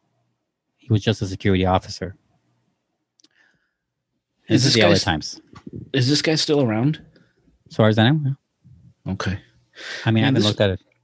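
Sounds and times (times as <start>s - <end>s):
man speaking: 0.9s - 2.2s, 4.5s - 7.0s, 7.7s - 10.8s.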